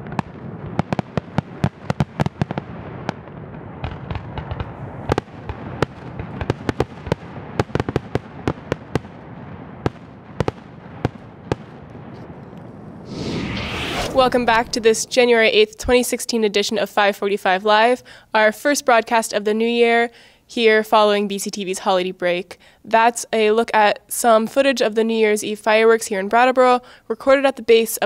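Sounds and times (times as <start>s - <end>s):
fireworks bangs and crackles: 0.0s - 16.1s
rumble of fireworks bursts: 0.0s - 16.1s
loud rushing noise: 13.0s - 15.5s.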